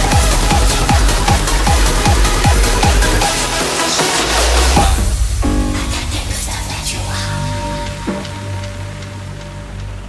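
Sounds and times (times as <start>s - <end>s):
fast kick drum and deep bass: 0.0s - 10.0s
trance music: 0.0s - 10.0s
held synth chord: 5.2s - 10.0s.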